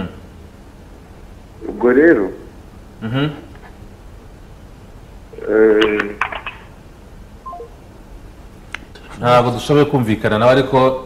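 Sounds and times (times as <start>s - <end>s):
person speaking on phone: 5.4s - 6.6s
descending electronic phone beep: 7.4s - 7.8s.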